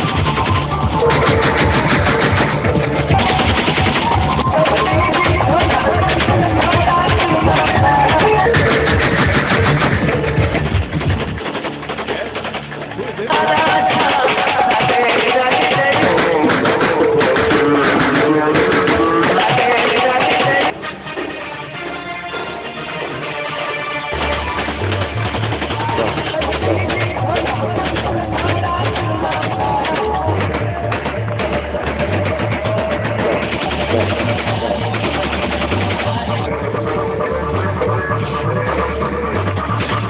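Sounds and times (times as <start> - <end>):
rifle gunshots in bursts: 0.0 - 20.7, 24.2 - 36.5
loud music: 0.0 - 40.0
voices: 12.0 - 20.7.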